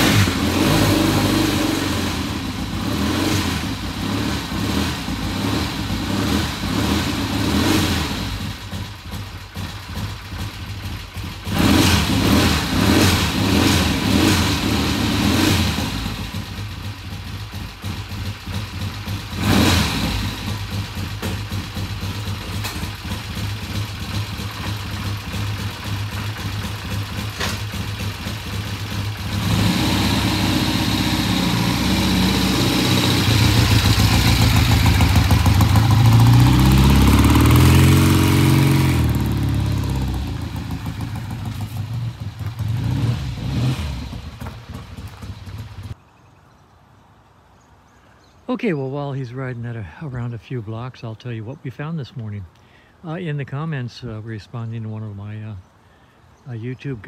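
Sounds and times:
motorcycle engine revving and idling: 0.0 - 46.0.

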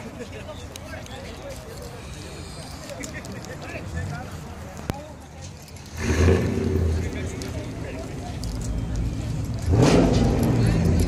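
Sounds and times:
people talking: 0.0 - 11.0
car engine humming: 5.8 - 11.0.

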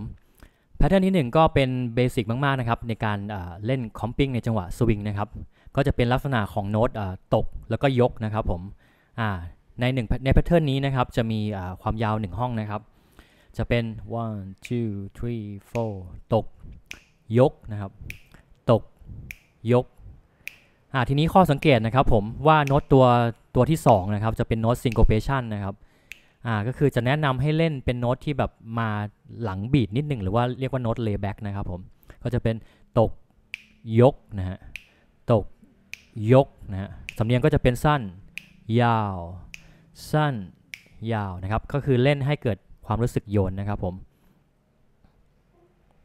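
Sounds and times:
man speaking: 13.6 - 16.6, 17.3 - 19.0, 19.6 - 20.0, 20.9 - 25.8, 26.4 - 33.2, 33.8 - 34.7, 35.3 - 44.0
finger snaps: 15.6 - 16.0, 16.7 - 17.3, 18.0 - 19.6, 20.4 - 21.8, 22.6 - 23.0, 24.8 - 25.3, 26.0 - 26.4, 33.3 - 33.9, 34.6 - 38.8, 39.4 - 39.9, 40.5 - 41.1.

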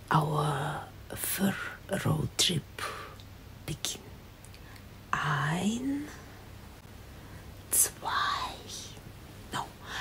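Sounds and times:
low steady hum: 0.0 - 10.0
woman whispering softly: 2.8 - 4.1, 5.1 - 6.3, 7.7 - 10.0.

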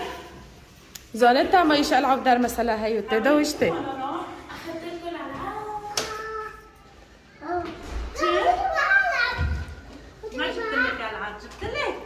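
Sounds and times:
child talking or calling: 5.7 - 11.1.

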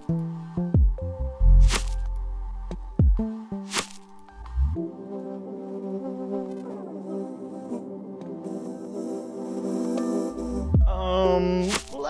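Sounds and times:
background music with sustained chords: 0.0 - 12.0.

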